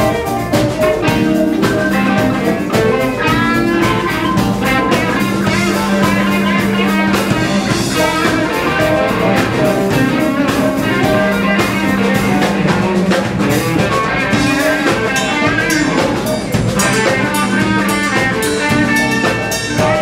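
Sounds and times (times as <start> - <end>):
drum kit and cymbals: 0.0 - 20.0
electric guitar: 0.0 - 20.0.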